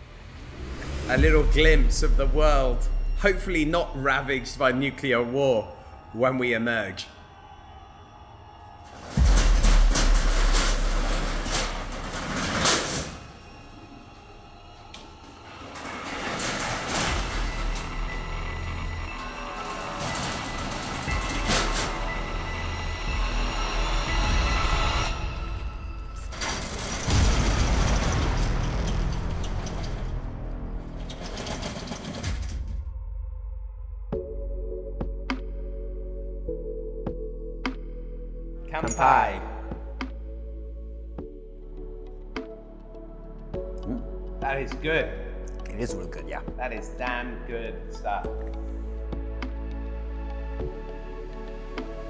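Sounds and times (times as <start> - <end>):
background music: 0.0 - 52.0
metal roller shutter rattling: 9.0 - 14.0, 14.9 - 23.2, 26.1 - 32.6.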